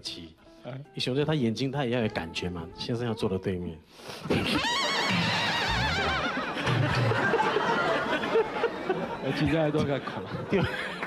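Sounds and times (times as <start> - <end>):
horse neighing: 4.3 - 6.8
laughter: 5.9 - 11.0.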